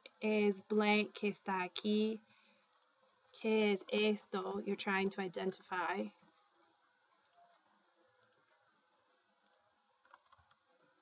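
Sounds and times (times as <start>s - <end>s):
faint computer clicks: 7.1s - 7.6s, 9.4s - 10.6s.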